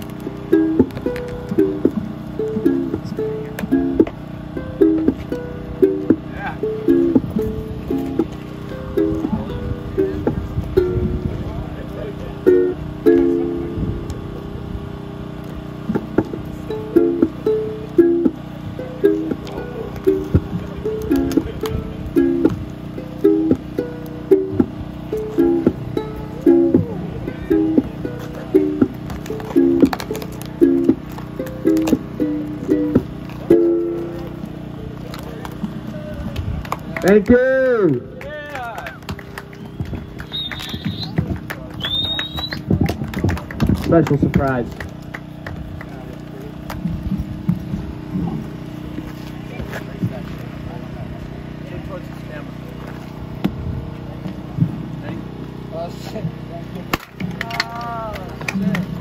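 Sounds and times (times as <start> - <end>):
electric guitars plucking notes: 0.0 - 36.0.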